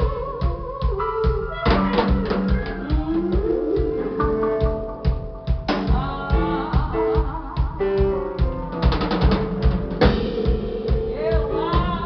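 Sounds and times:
drum kit beat: 0.0 - 12.0
live band playing: 0.0 - 12.0
held guitar notes: 1.7 - 7.1.

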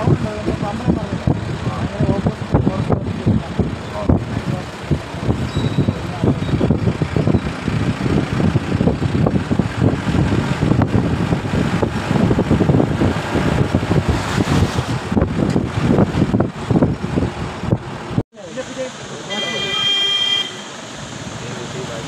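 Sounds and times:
wind buffeting microphone: 0.0 - 18.2
vehicle engine and road rumble: 0.0 - 22.0.

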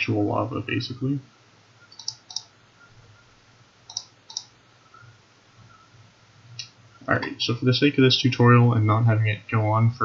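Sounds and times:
mouse button clicks: 1.9 - 2.5, 3.9 - 4.5.

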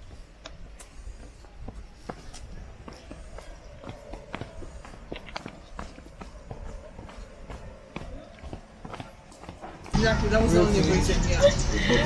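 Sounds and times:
footsteps on rocky trail: 0.0 - 10.0.

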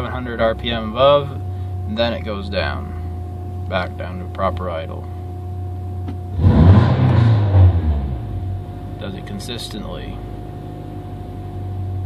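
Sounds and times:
car engine revving: 6.3 - 9.1.

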